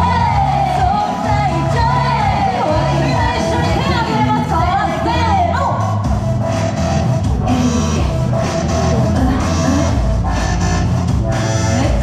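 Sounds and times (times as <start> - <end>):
pop backing track over speakers: 0.0 - 12.0.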